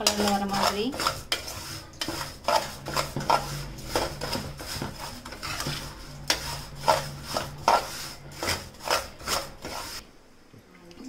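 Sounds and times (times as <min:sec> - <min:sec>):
spoon scraping rice in pan: 0:00.0 - 0:10.0.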